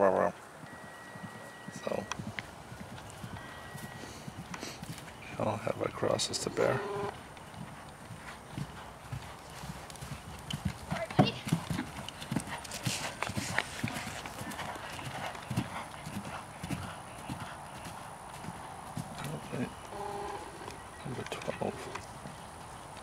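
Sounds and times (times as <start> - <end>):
horse hoofbeats on grass: 0.4 - 6.3, 7.1 - 23.0.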